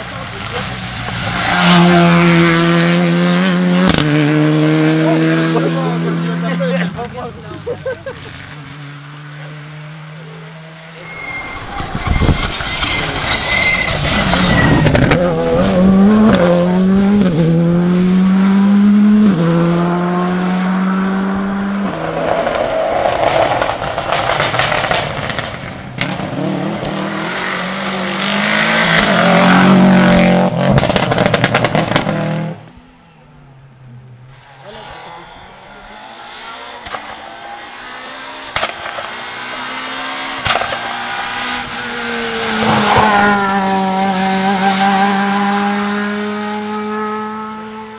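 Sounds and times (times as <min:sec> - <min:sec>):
car passing loudly: 0:00.0 - 0:32.7, 0:33.3 - 0:47.9
rally car engine revving: 0:00.0 - 0:47.9.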